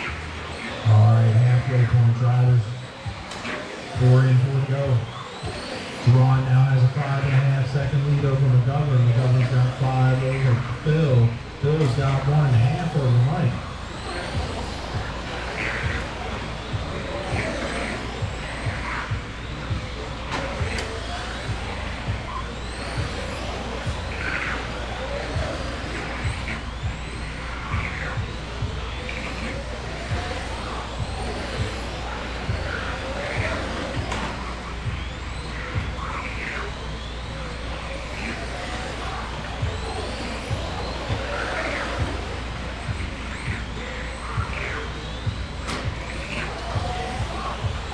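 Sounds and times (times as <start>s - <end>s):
electric motors whining: 0.0s - 47.9s
steady low hum: 0.0s - 47.9s.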